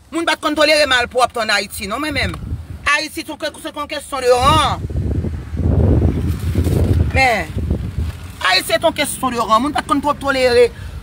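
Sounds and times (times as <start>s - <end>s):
wind buffeting microphone: 1.8s - 3.0s, 4.1s - 11.0s.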